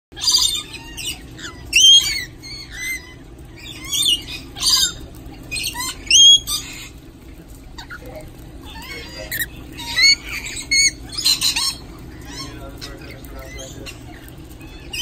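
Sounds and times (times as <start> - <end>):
lorikeets chattering: 0.2 - 7.0, 7.7 - 15.0.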